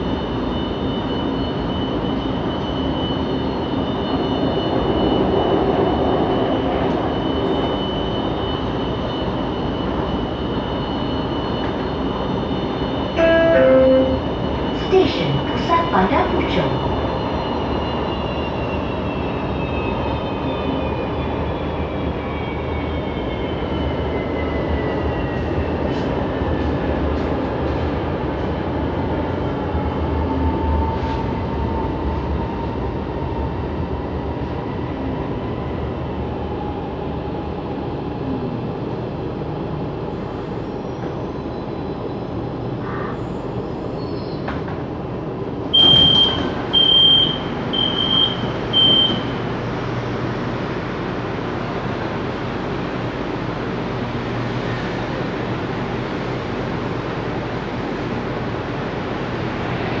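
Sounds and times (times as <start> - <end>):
train running rumble: 0.0 - 60.0
high door chime beeps: 13.2 - 14.9.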